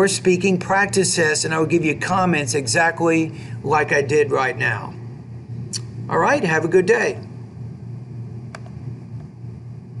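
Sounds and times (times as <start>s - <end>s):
room and microphone hum: 0.0s - 10.0s.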